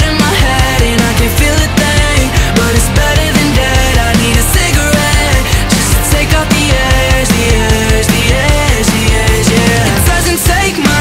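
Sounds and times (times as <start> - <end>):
rock song with drums and bass: 0.0 - 11.0.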